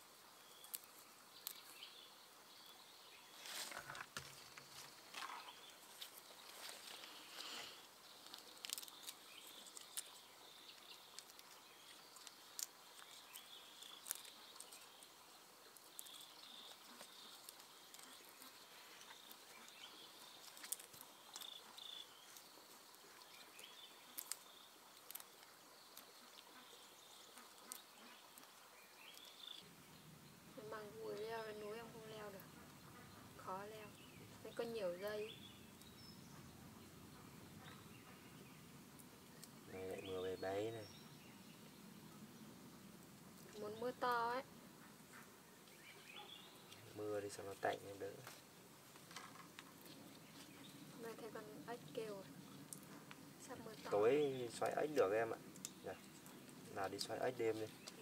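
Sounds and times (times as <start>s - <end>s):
small clicks and snaps of stalks: 0.5s - 1.8s, 8.2s - 26.6s, 27.3s - 29.5s, 38.9s - 39.6s, 47.7s - 50.5s, 52.6s - 58.0s
rustling of leaves and stems: 2.7s - 29.6s, 45.7s - 58.0s.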